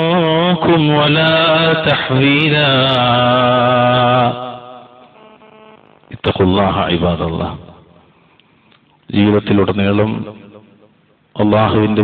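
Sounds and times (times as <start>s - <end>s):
man chanting recitation: 0.0s - 7.7s, 11.4s - 12.0s.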